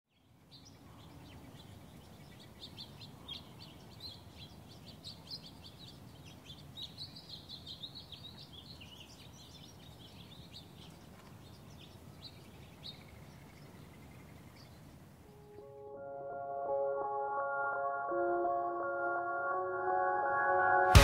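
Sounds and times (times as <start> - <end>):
small birds chirping: 0.1 - 15.7.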